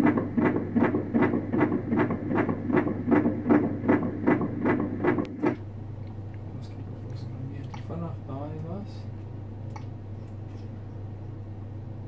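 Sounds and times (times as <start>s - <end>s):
fast fetal heartbeat pulse: 0.0s - 5.6s.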